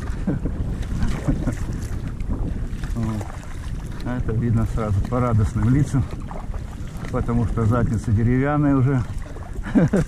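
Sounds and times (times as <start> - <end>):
water splashing from paddle strokes: 0.0 - 10.0
wind buffeting microphone: 0.0 - 10.0.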